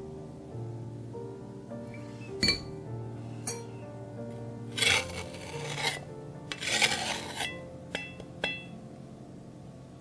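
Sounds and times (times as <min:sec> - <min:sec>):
metal blade scraping cup rim: 0:04.7 - 0:08.2.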